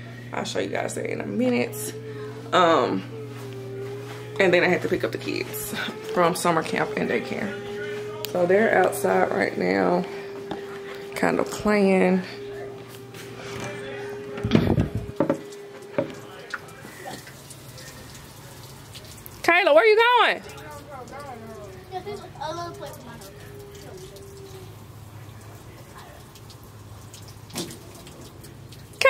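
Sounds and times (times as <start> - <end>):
water running from hose: 0.0 - 29.0
children's voices: 20.7 - 24.8
child shouting: 21.4 - 24.6.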